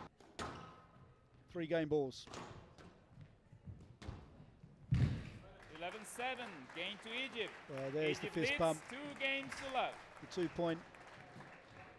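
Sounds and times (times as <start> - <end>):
squash ball struck by racket: 0.2 - 0.9.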